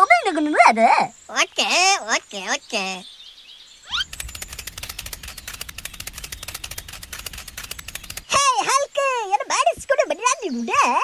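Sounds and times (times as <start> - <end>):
tractor engine running: 3.9 - 8.5.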